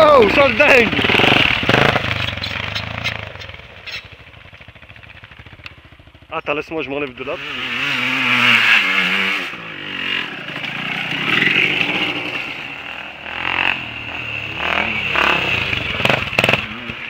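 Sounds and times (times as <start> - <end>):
quad engine revving: 0.0 - 4.8, 7.0 - 17.0.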